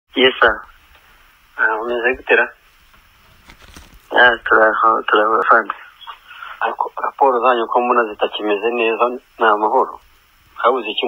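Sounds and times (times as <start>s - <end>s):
person talking over phone line: 0.2s - 0.7s, 1.6s - 2.6s, 4.1s - 10.0s, 10.6s - 11.0s.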